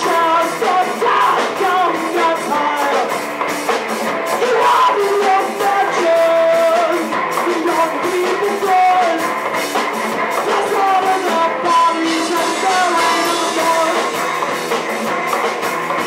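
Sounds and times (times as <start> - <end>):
drum kit: 0.0 - 16.0
electric guitar: 0.0 - 16.0
rock band playing: 0.0 - 16.0.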